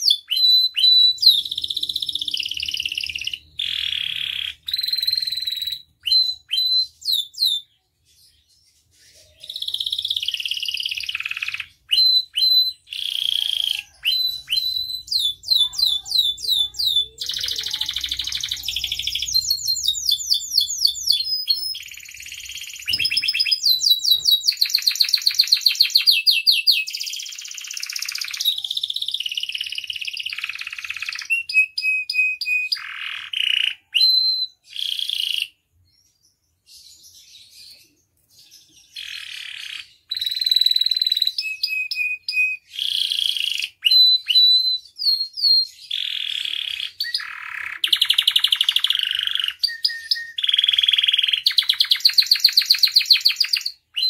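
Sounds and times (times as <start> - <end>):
canary singing trills: 0.0 - 54.0.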